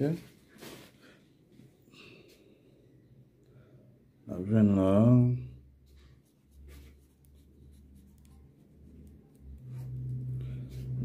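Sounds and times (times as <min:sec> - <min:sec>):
low steady hum: 0:01.5 - 0:11.0
pen scratching on paper: 0:06.1 - 0:11.0.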